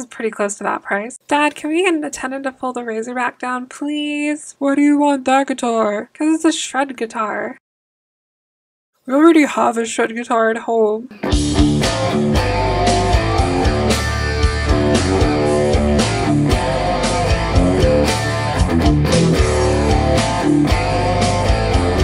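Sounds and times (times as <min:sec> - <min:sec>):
electric guitar riff: 0:11.1 - 0:22.0.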